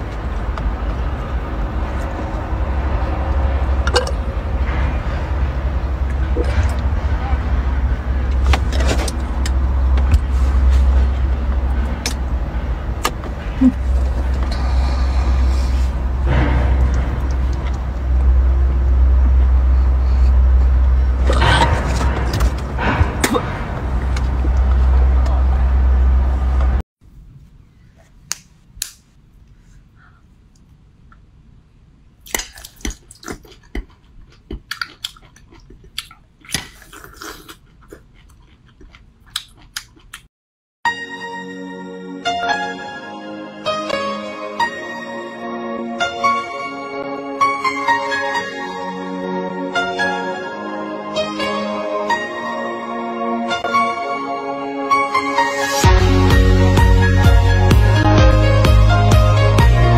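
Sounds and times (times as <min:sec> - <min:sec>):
steady low rumble: 0:00.0 - 0:27.7
slurping and chewing: 0:32.3 - 0:40.3.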